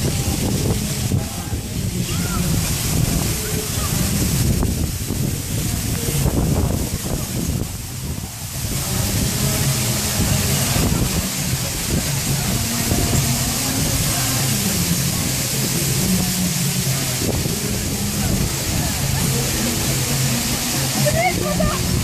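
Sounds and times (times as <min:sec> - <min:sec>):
crowd noise: 0:00.0 - 0:22.0
musical accompaniment: 0:00.0 - 0:22.0
wind hiss: 0:00.0 - 0:22.0.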